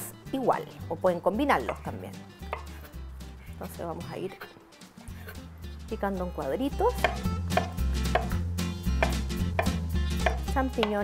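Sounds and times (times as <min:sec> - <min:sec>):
knife chopping on wooden board: 0:01.6 - 0:02.8, 0:07.0 - 0:11.0.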